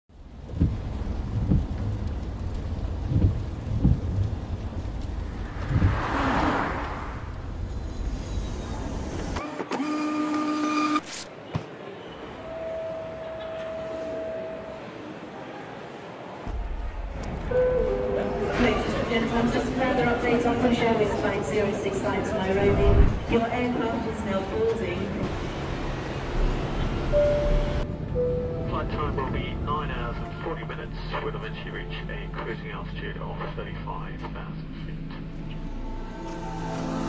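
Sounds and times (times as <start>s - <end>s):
low rumble with soft thumps: 0.1s - 6.2s
whoosh: 5.0s - 8.8s
music: 35.5s - 37.0s.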